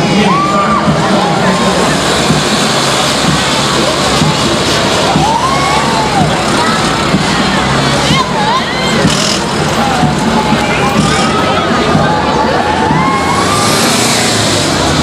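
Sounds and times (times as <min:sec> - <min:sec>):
crowd voices: 0:00.0 - 0:15.0
people shouting: 0:00.0 - 0:15.0
trucks driving past: 0:00.0 - 0:15.0.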